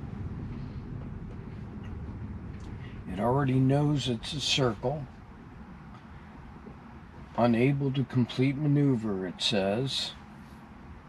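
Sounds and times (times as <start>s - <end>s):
tyre and road rumble: 0.0s - 11.0s.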